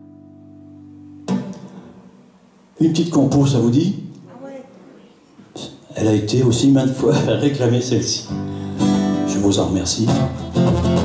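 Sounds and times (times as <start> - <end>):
man speaking: 2.8 - 4.1, 5.5 - 8.3
acoustic guitar chord ringing: 8.2 - 11.0.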